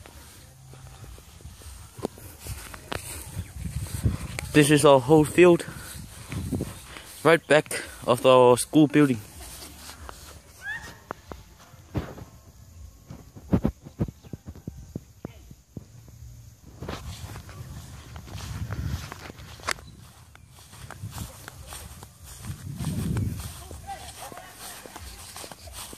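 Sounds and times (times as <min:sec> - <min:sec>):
footsteps on grass: 0:00.0 - 0:25.9.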